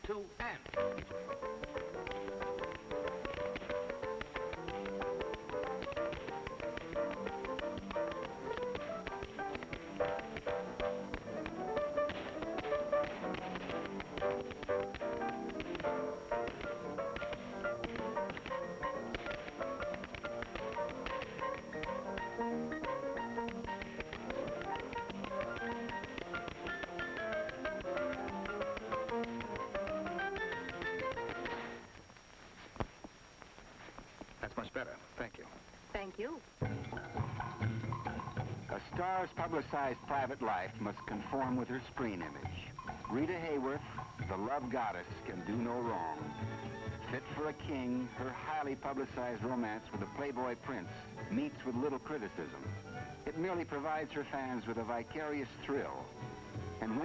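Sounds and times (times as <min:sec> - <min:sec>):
upbeat dance-band music: 0:00.0 - 0:31.9
tap-shoe clicks: 0:00.6 - 0:31.8.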